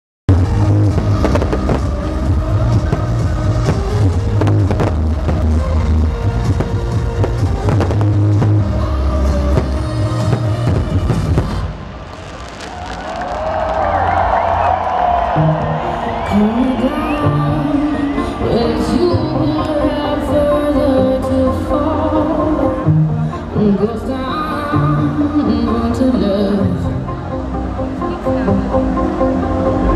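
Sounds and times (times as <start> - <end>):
electronic dance music with heavy bass: 0.3 - 11.8, 15.3 - 29.9
crowd cheering and shouting: 0.3 - 29.9
firework bangs: 0.9 - 2.0, 9.5 - 14.1.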